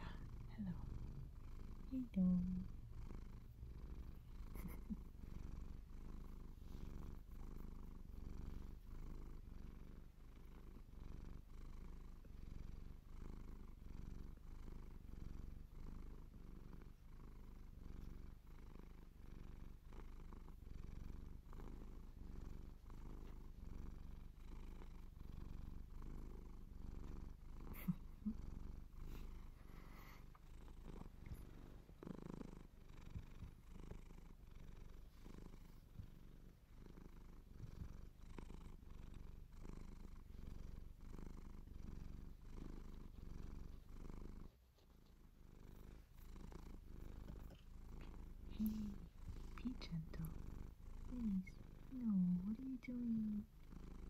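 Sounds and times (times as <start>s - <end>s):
cat purring: 0.0s - 54.0s.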